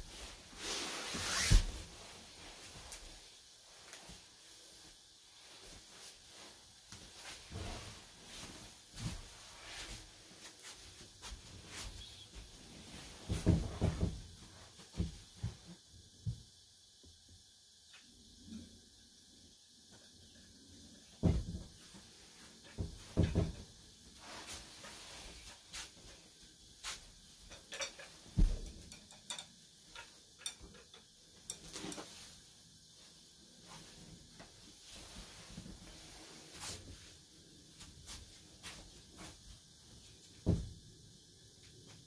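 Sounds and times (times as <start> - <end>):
soft knocks and thumps on mats: 13.2 - 14.3, 14.9 - 15.7, 21.2 - 21.8, 22.8 - 23.7, 28.4 - 28.7, 40.4 - 40.8.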